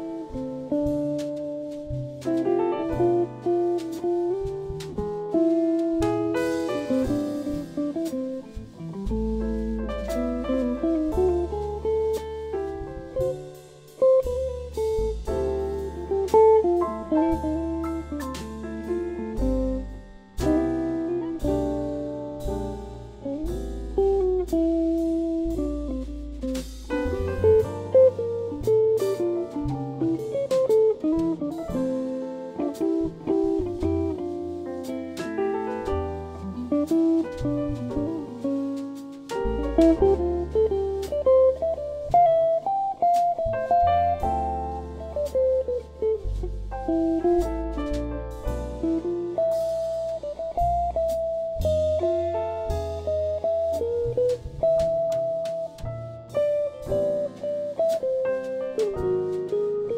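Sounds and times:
double bass: 0.0 - 59.9
drum kit with cymbals: 0.0 - 59.9
piano: 0.0 - 59.9.

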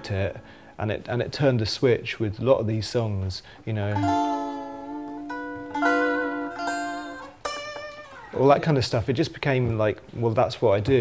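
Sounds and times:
electric guitar notes and chords: 4.0 - 8.4.

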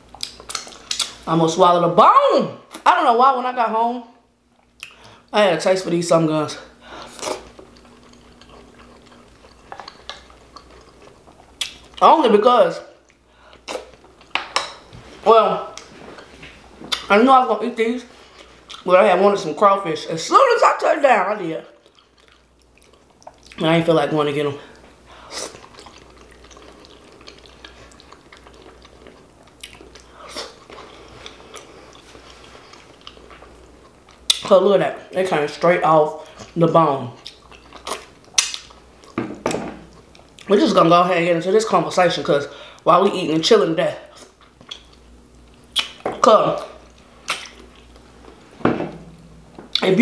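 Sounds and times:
wet chewing and lip smacks: 0.1 - 1.2, 4.6 - 5.2, 7.0 - 12.0, 21.8 - 23.6, 25.3 - 34.5, 37.2 - 39.2, 44.1 - 46.0, 46.8 - 48.2.

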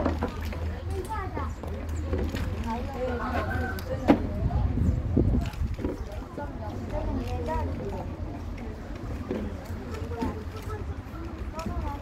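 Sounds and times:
voices talking in background: 0.0 - 12.0
wind rumble on microphone: 2.0 - 9.6.

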